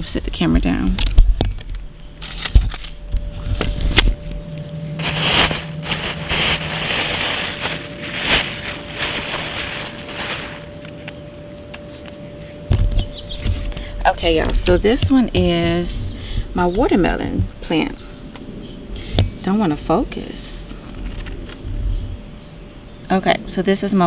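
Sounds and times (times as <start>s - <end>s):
plastic bag rustling: 4.9s - 11.2s.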